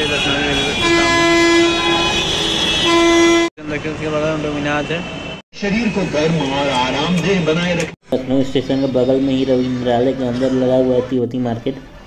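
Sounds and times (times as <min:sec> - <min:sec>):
vehicle horn blast: 0:00.0 - 0:03.5.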